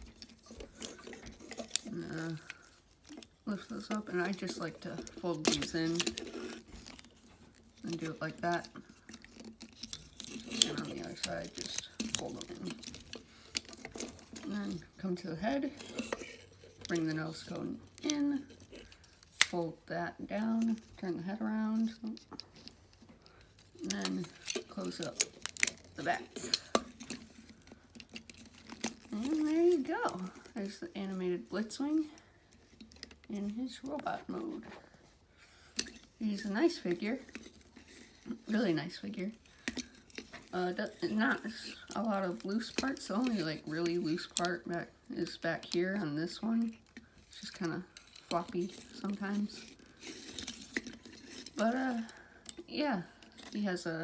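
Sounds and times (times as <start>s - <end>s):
plastic toy clicks and rustles: 0.0s - 19.7s, 21.6s - 34.6s, 35.7s - 54.0s.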